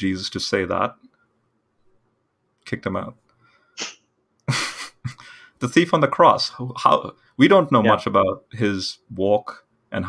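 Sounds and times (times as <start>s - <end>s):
breath hissing: 3.7s - 4.0s.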